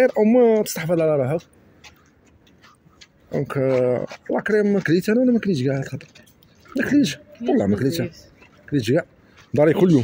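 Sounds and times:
man speaking: 0.0s - 1.5s, 3.3s - 10.0s.

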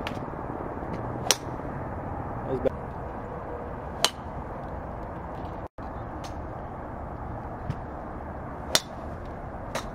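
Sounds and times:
outdoor background noise: 0.0s - 9.9s
golf club striking ball: 1.2s - 1.6s, 4.0s - 4.3s, 8.7s - 9.1s.

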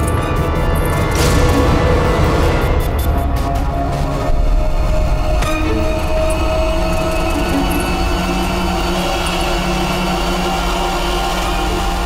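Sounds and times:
tense background music: 0.0s - 12.0s.

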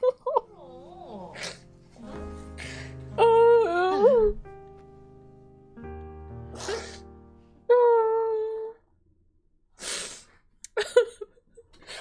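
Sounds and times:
woman crying: 0.0s - 1.6s, 2.6s - 4.4s, 7.7s - 8.8s
soft sustained music: 0.0s - 8.7s
sniff: 6.5s - 7.1s, 9.8s - 10.4s.

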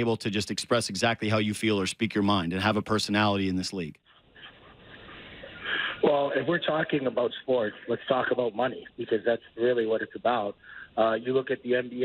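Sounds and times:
caller speaking: 0.0s - 3.9s
breathing over a telephone line: 10.6s - 11.0s.

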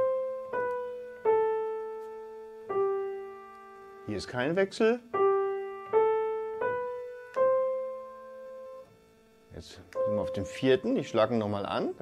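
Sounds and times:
piano notes climbing: 0.0s - 12.0s.

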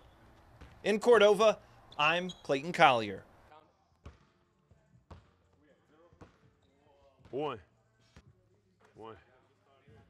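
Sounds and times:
basketball bouncing on wooden floor: 5.1s - 5.4s.

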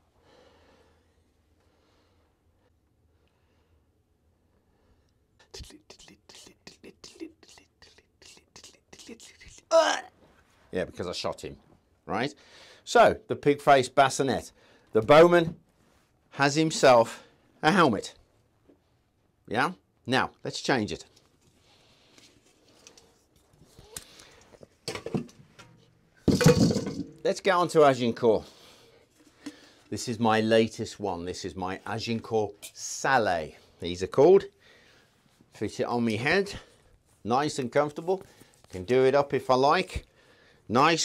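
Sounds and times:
man whispering: 5.4s - 10.1s
steel helmets clattering: 24.8s - 27.2s.

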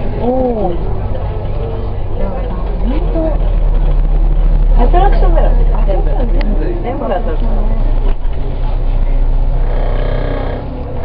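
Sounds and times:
bus engine and road rumble: 0.0s - 11.0s.

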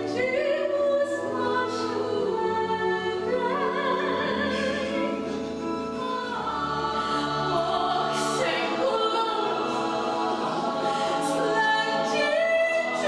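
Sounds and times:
chorus singing in harmony: 0.0s - 13.0s.

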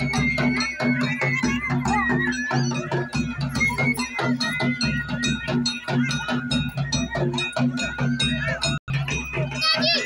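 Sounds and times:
sustained high melody: 0.0s - 10.0s.

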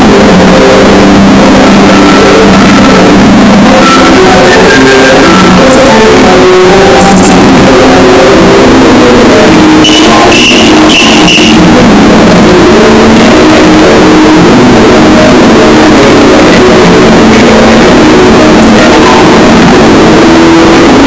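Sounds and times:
distorted cartoon music: 0.0s - 21.0s.

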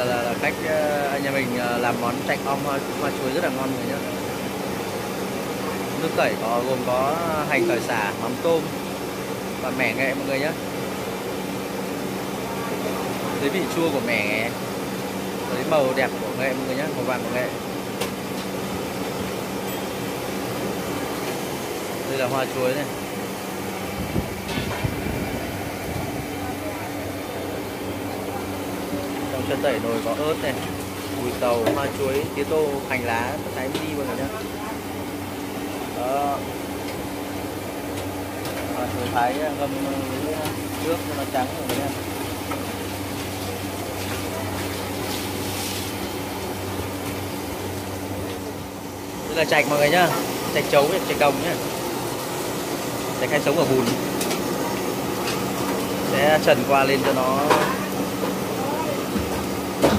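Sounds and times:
gas burner roaring hum: 0.0s - 59.9s
kitchen fans running: 0.0s - 59.9s.

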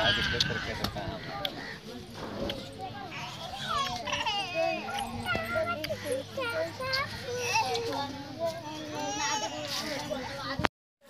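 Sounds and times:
other voices: 0.0s - 10.7s.

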